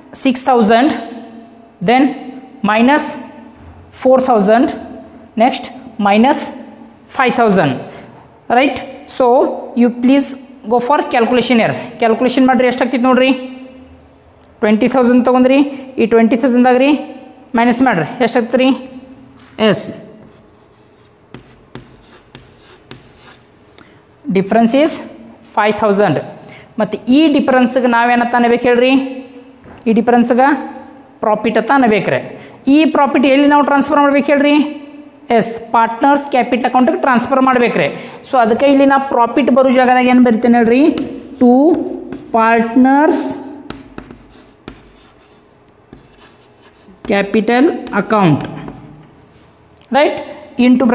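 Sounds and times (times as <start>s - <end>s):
chalk writing on blackboard: 20.2s - 23.6s, 40.8s - 42.5s, 43.1s - 49.1s.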